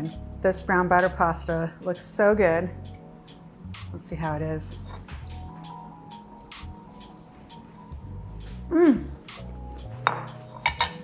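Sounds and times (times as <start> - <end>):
soft background music: 0.0 - 11.0
fork clinking on ceramic bowl: 10.1 - 11.0.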